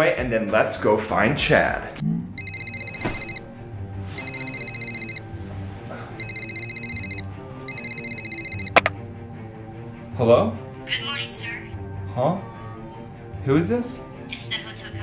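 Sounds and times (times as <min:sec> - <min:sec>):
background music: 0:00.0 - 0:15.0
telephone ringing electronic warble: 0:02.4 - 0:03.4, 0:04.2 - 0:05.2, 0:06.2 - 0:08.9
handset pickup click: 0:08.7 - 0:08.9.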